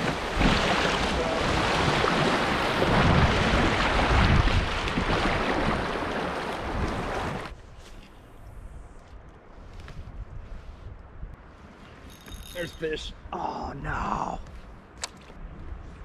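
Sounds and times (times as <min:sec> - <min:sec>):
rushing water of rapids: 0:00.0 - 0:07.5
faint water sounds: 0:00.0 - 0:08.9.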